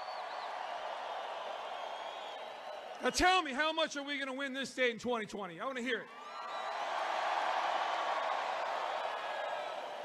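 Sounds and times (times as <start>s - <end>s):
crowd cheering and shouting: 6.0s - 10.0s.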